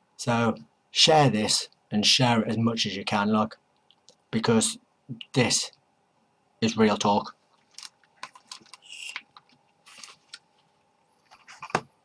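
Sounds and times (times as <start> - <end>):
headphones being handled: 7.5 - 12.0
computer keys clicking: 7.7 - 9.6.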